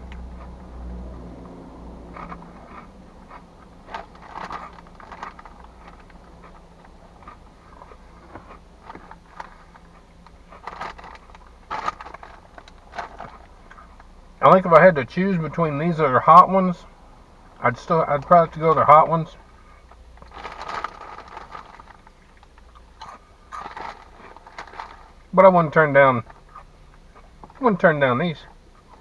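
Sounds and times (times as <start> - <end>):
low steady hum: 0.0 - 29.0
chewing crunchy snacks: 2.1 - 14.1, 19.8 - 25.2
snack bag crinkling: 2.2 - 13.6, 20.2 - 22.8, 23.5 - 25.2.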